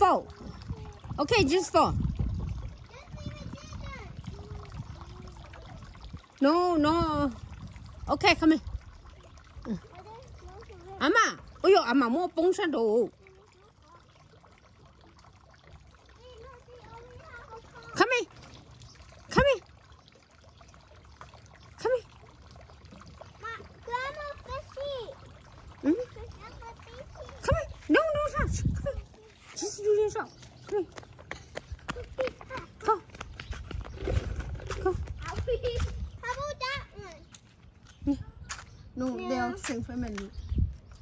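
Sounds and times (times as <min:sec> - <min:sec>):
distant children's voices: 0:00.0 - 0:06.3, 0:09.0 - 0:11.8, 0:13.0 - 0:19.6, 0:20.7 - 0:40.4.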